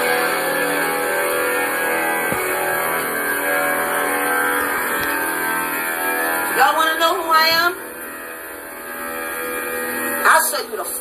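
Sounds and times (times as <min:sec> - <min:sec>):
steady hum with overtones: 0:00.0 - 0:11.0.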